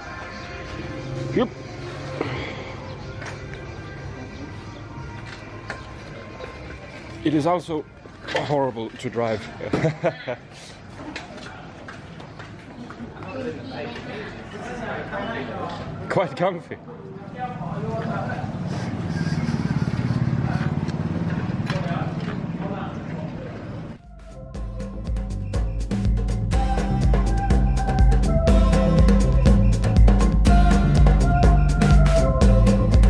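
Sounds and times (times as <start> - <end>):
background music: 0.0 - 8.4, 24.0 - 33.0
motor scooter passing by: 18.0 - 24.0.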